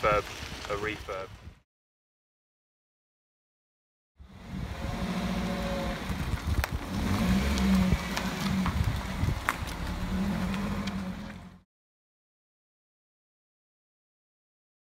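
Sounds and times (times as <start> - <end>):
car engine driving past: 4.3 - 11.6.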